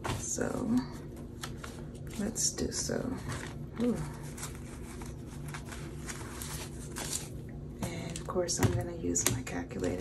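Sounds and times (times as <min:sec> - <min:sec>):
low steady hum: 0:00.0 - 0:10.0
banknotes rustling: 0:03.2 - 0:07.4.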